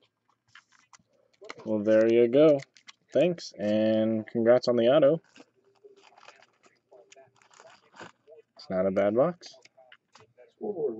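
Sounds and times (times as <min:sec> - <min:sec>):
card in plastic sleeve rustling: 0:00.0 - 0:04.1, 0:05.1 - 0:08.4.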